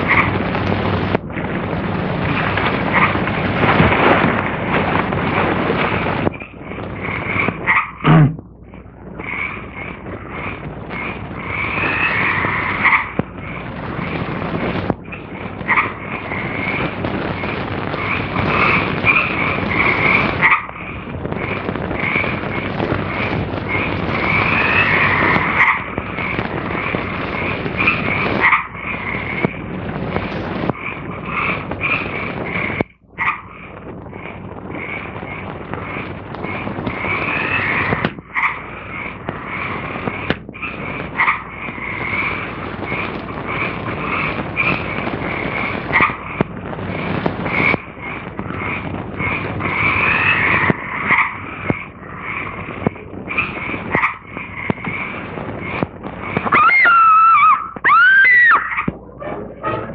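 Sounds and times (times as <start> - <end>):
film soundtrack hiss: 0.0 - 59.9
croaking animal calls: 6.3 - 8.4, 9.2 - 13.6, 15.1 - 29.6, 30.7 - 46.4, 47.5 - 59.9.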